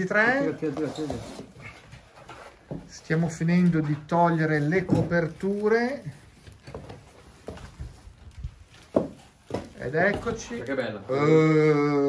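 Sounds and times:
fabric rustling: 0.0s - 12.0s.

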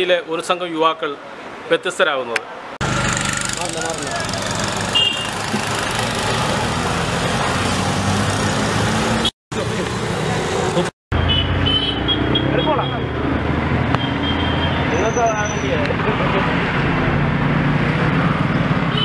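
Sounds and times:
vehicle engines running: 2.8s - 19.0s
car horn toots: 4.9s - 5.4s, 11.2s - 13.1s.

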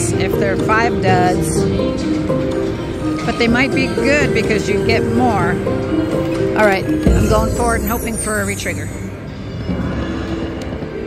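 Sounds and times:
slot machine bonus music: 7.1s - 9.3s.

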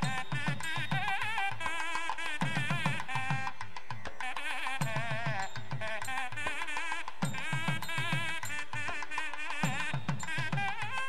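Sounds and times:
quick drum strokes: 0.0s - 11.0s
buzzy reed pipe melody: 4.2s - 11.0s.

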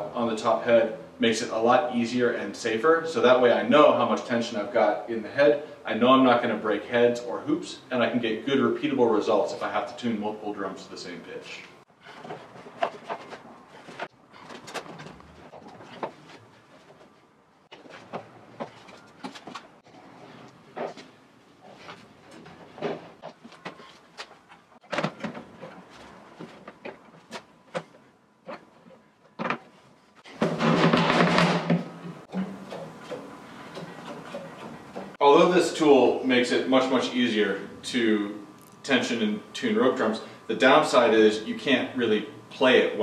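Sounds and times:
drum ropes knocking and rubbing: 12.0s - 35.2s.

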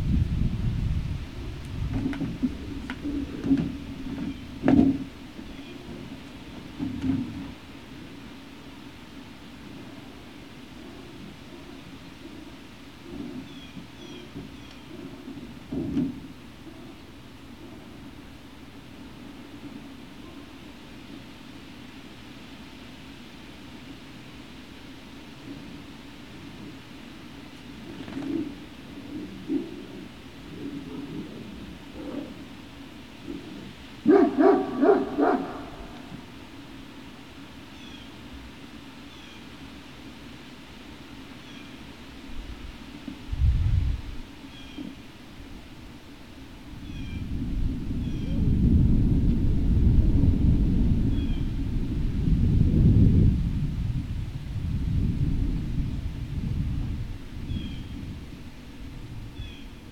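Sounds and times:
low rumble: 0.0s - 4.0s, 46.6s - 59.9s
faint bird chirps: 13.4s - 14.9s
dog yipping: 34.1s - 36.0s.

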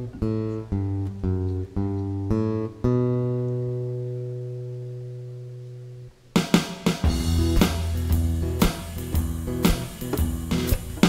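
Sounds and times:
band playing: 6.4s - 11.0s.

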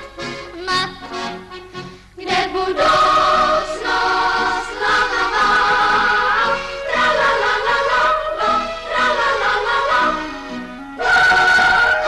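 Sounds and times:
girls choir singing: 2.2s - 12.0s.

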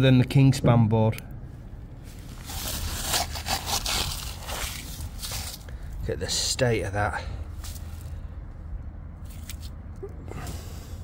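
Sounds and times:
hand scraping polystyrene beads: 2.1s - 5.7s.

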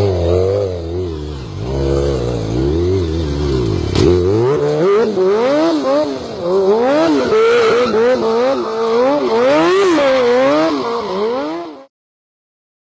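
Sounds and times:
motorcycle engine revving: 0.0s - 11.9s.

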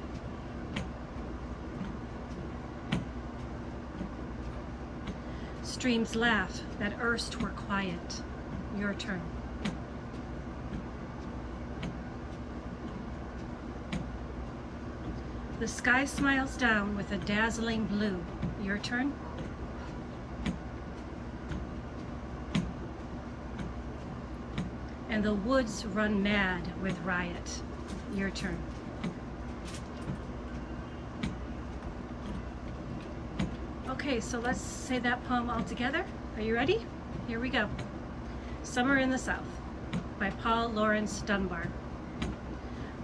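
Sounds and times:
low background hum: 0.0s - 43.0s.

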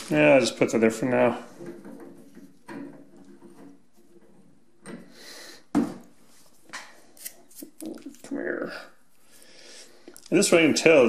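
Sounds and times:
rustling: 0.0s - 2.6s.

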